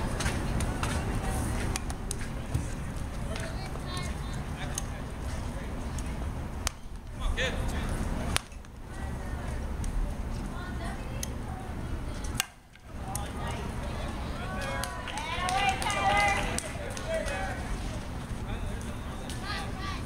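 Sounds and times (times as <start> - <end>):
spectators talking: 0.0 - 20.0.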